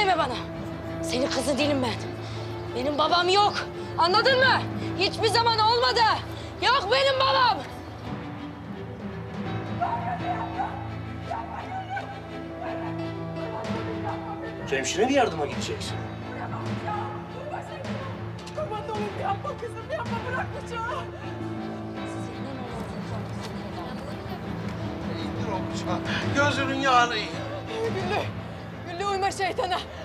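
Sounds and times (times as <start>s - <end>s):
background music low tones: 0.0s - 30.0s
dramatic background score: 0.0s - 30.0s
people's voices: 0.0s - 30.0s.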